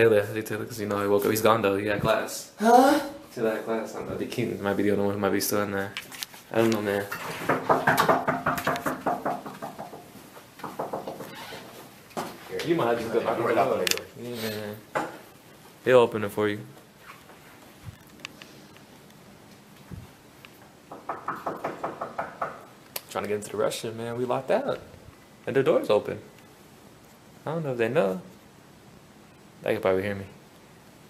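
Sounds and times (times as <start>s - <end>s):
knocks and rattles: 7.1s - 11.4s, 20.9s - 22.7s.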